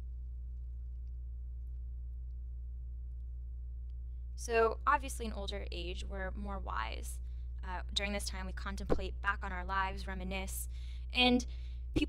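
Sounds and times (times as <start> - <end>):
electrical mains hum and buzz: 0.0 - 12.0.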